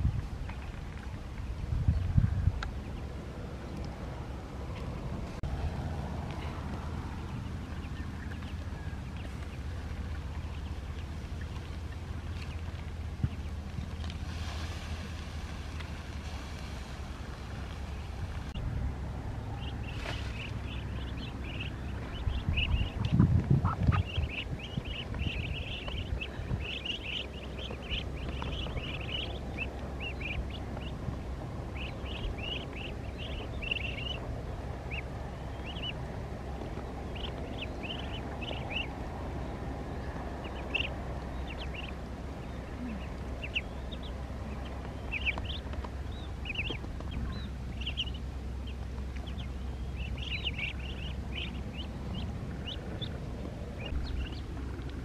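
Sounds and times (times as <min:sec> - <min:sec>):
ducklings peeping: 0:00.0 - 0:55.0
low rumbling: 0:00.0 - 0:55.0.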